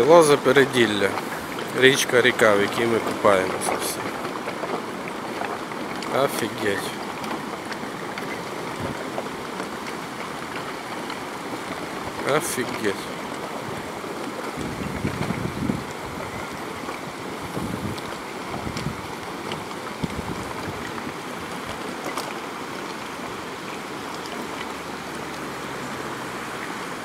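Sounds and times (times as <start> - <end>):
low wind buffets on microphone: 0.0 - 27.0
river rushing: 0.0 - 27.0.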